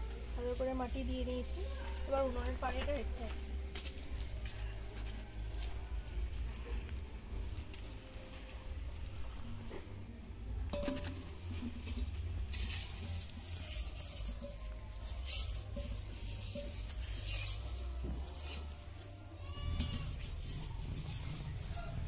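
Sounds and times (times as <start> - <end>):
hand scraping clay pot: 10.7 - 22.0.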